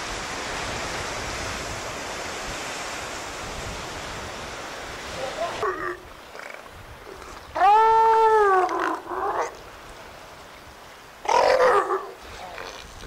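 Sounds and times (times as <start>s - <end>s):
elephant seal calling: 5.3s - 9.6s, 11.2s - 12.8s.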